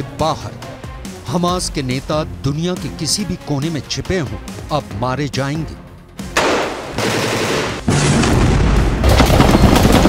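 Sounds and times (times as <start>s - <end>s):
automatic gunfire: 6.4s - 7.8s.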